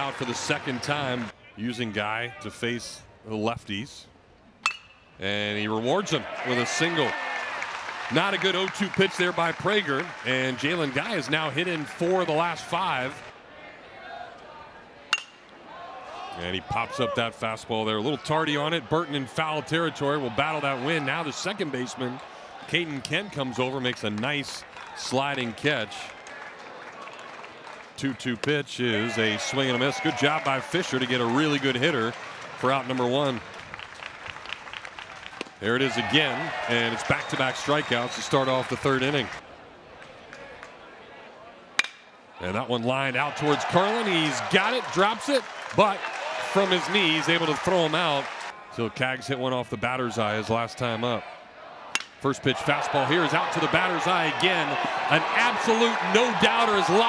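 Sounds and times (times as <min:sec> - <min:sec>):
metal bat hitting baseball: 0:04.6 - 0:05.1, 0:15.1 - 0:15.4, 0:41.8 - 0:42.1, 0:51.9 - 0:52.2.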